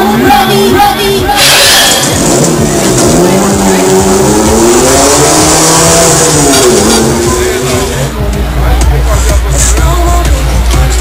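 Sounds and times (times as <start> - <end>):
pounding music beat: 0.0 - 11.0.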